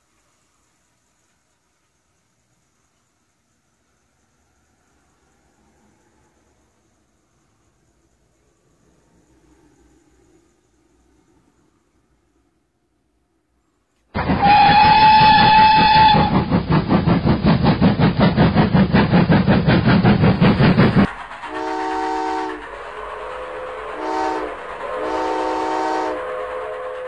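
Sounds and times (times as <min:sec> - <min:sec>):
steady steam hiss: 0:00.0 - 0:27.0
chord whistle blasts: 0:14.2 - 0:16.5, 0:21.5 - 0:27.0
steam train whistle: 0:14.2 - 0:16.6, 0:21.5 - 0:27.0
rhythmic train running beat: 0:14.2 - 0:27.0.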